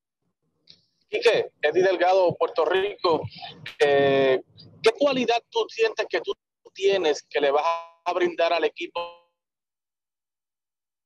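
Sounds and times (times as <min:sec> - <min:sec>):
man speaking: 0:01.1 - 0:09.1.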